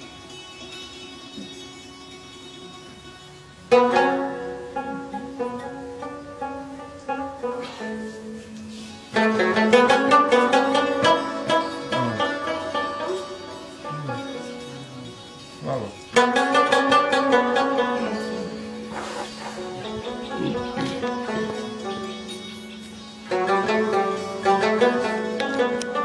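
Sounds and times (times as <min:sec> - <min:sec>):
hammered dulcimer notes: 0:00.0 - 0:26.0
plucked lute: 0:00.0 - 0:26.0
tabla strokes: 0:00.0 - 0:26.0.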